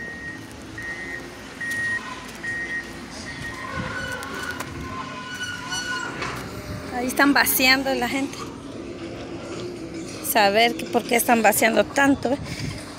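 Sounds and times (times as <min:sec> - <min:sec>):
reversing alarm beeping: 0:00.0 - 0:06.8.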